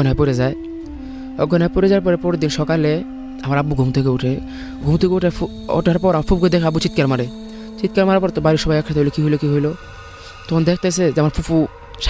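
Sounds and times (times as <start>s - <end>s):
held tone of background music: 0.0s - 12.0s
man speaking: 1.4s - 9.8s, 10.4s - 12.0s.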